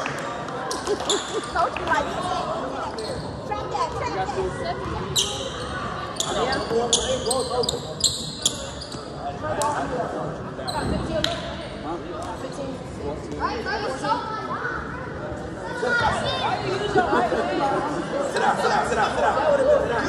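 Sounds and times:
voices echoing in hall: 0:00.0 - 0:20.0
sneakers squeaking on gym floor: 0:02.9 - 0:04.0, 0:04.8 - 0:09.2, 0:10.6 - 0:11.5.

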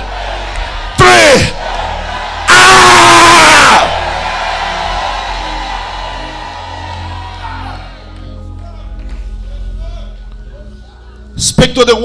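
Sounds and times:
music with sustained chords: 0:00.0 - 0:12.0
man shouting into a microphone: 0:01.0 - 0:01.6, 0:02.5 - 0:03.9.

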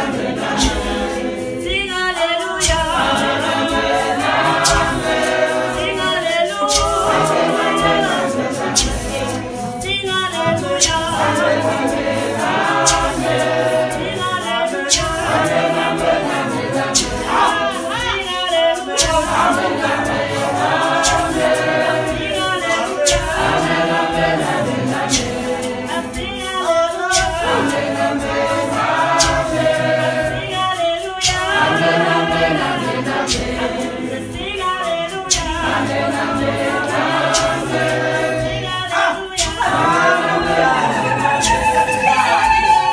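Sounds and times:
sharp percussive knocks: 0:00.0 - 0:02.0, 0:02.6 - 0:14.3, 0:14.9 - 0:18.2, 0:19.0 - 0:26.3, 0:27.1 - 0:30.6, 0:31.2 - 0:34.1, 0:35.3 - 0:38.8
congregation singing gospel: 0:00.0 - 0:42.9.

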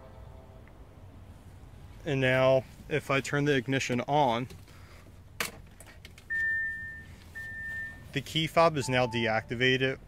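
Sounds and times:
dashboard warning chime beeps: 0:06.3 - 0:09.8.

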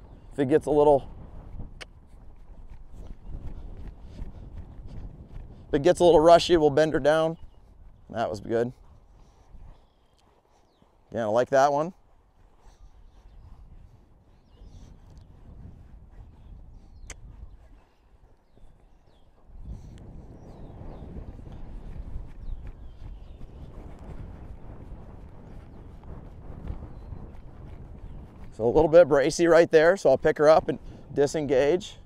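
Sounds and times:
horse hoofbeats on sand: 0:00.0 - 0:32.0.

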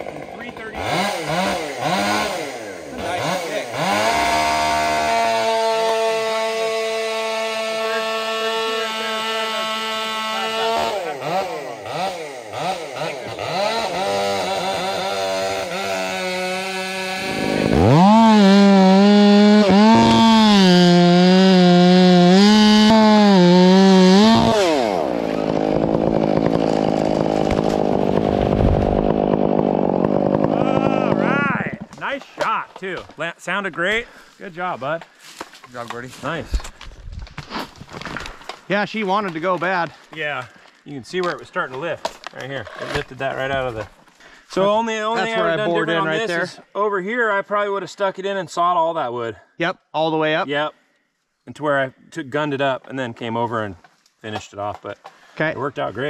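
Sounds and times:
chainsaw cutting wood: 0:00.0 - 0:32.3
tree crashing down: 0:25.4 - 0:32.1.

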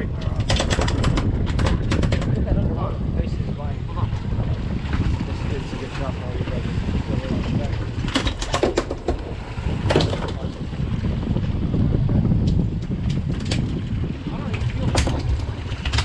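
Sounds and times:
boat noise: 0:00.0 - 0:16.0
wind rumble: 0:00.0 - 0:16.0
fishing tackle clicking and knocking: 0:00.2 - 0:02.4, 0:08.0 - 0:09.2.

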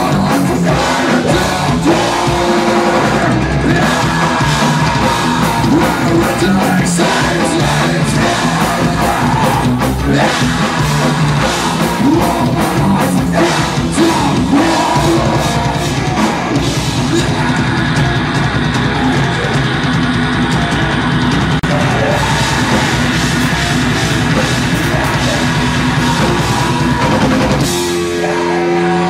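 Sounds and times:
live heavy rock band: 0:00.0 - 0:29.0.

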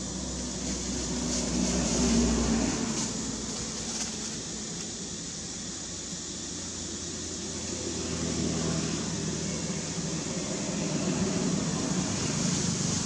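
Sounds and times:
hiss: 0:00.0 - 0:13.0
low mechanical rumble: 0:00.0 - 0:13.0.

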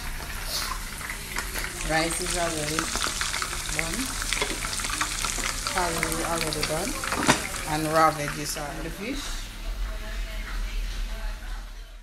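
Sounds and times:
oil popping and crackling: 0:00.0 - 0:08.6
chicken sizzling in oil: 0:00.0 - 0:08.9.

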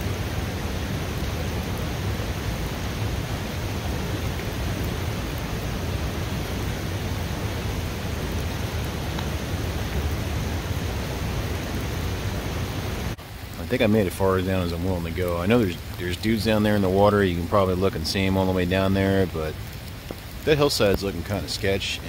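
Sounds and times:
fast-flowing river: 0:00.0 - 0:22.0
heavy rain: 0:00.0 - 0:22.0.

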